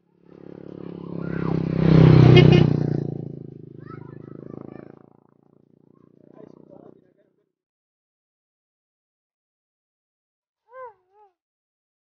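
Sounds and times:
vehicle engine passing close: 0:00.0 - 0:05.3.

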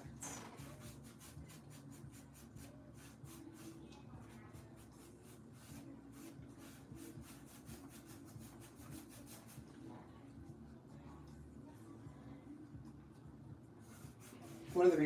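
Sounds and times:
low room hum: 0:09.4 - 0:15.0.

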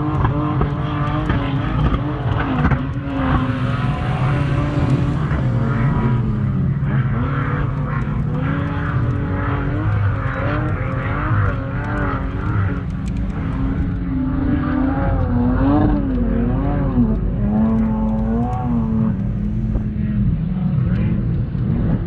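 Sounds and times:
engines revving: 0:00.0 - 0:22.0.

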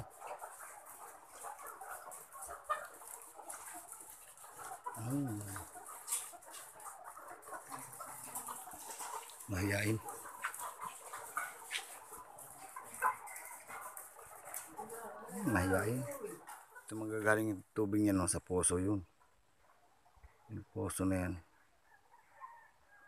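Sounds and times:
hens clucking and chattering: 0:00.0 - 0:23.0
low voice sounds: 0:05.0 - 0:05.7.

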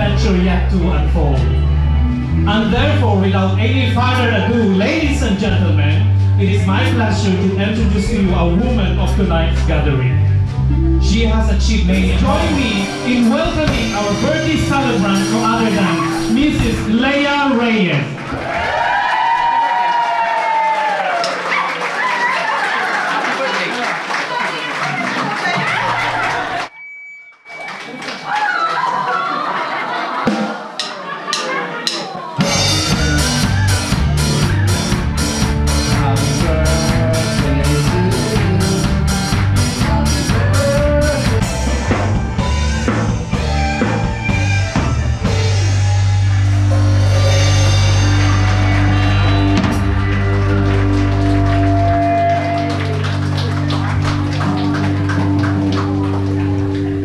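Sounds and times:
held low bass note: 0:00.0 - 0:17.6, 0:32.5 - 0:57.0
live rock band playing: 0:00.0 - 0:18.3, 0:30.2 - 0:57.0
room full of voices: 0:11.0 - 0:26.7, 0:27.5 - 0:42.4.

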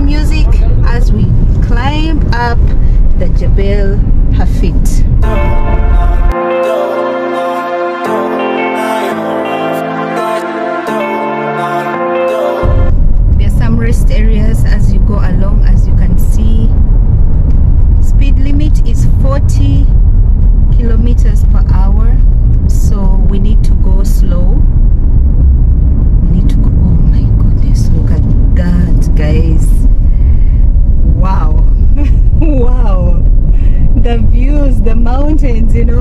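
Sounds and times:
people talking: 0:00.0 - 0:05.6, 0:13.4 - 0:16.8, 0:18.0 - 0:20.0, 0:20.7 - 0:24.7, 0:26.2 - 0:29.9, 0:31.0 - 0:33.3, 0:34.0 - 0:36.0
car engine and tyres rumbling: 0:00.0 - 0:06.3, 0:12.9 - 0:36.0
background music: 0:05.2 - 0:13.0.

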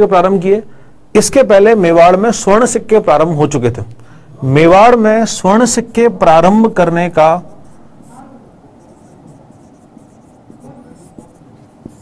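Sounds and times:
marker writing on whiteboard: 0:07.4 - 0:12.0.

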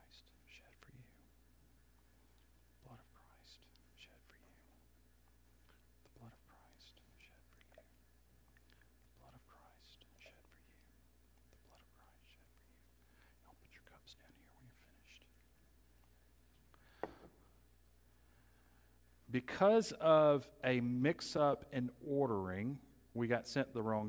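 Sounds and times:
low steady hum: 0:00.0 - 0:24.0
faint whispered voices: 0:02.8 - 0:04.8, 0:06.1 - 0:08.0, 0:09.2 - 0:15.5.

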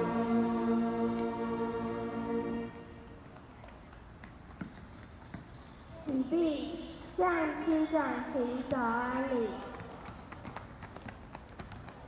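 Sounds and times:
children singing held chord: 0:00.0 - 0:02.9.

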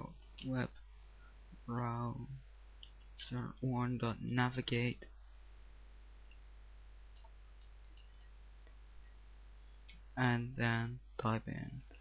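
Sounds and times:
low hum: 0:00.0 - 0:12.0
microphone hiss: 0:00.0 - 0:12.0.

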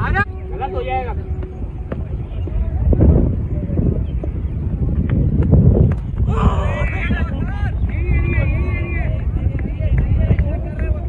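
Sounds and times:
wind buffeting microphone: 0:00.0 - 0:11.0
players shouting: 0:06.2 - 0:09.2.

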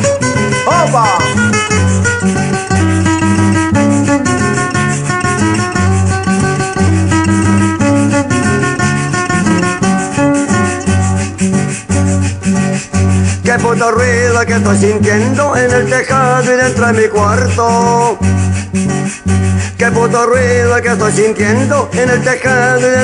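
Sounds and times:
bass line: 0:00.0 - 0:22.0
acoustic guitars playing melody: 0:00.0 - 0:23.0
shaker rhythm: 0:00.0 - 0:23.0.

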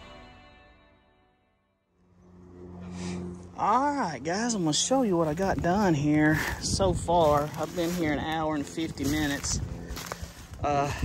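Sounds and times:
steady low hum: 0:01.9 - 0:11.0
man speaking: 0:03.6 - 0:09.6.

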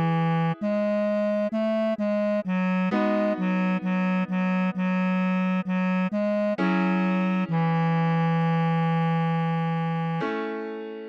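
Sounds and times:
bass clarinet long note: 0:00.0 - 0:10.2.

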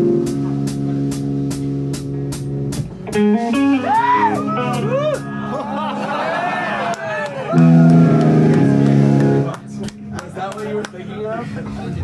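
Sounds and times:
electric guitar playing: 0:00.0 - 0:12.0
people laughing: 0:04.6 - 0:08.4, 0:11.2 - 0:12.0
people talking: 0:08.6 - 0:12.0.

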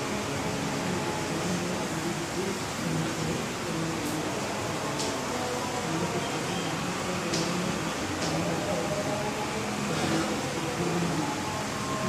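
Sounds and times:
faint indistinct voices: 0:00.0 - 0:12.0
fan hiss: 0:00.0 - 0:12.0.

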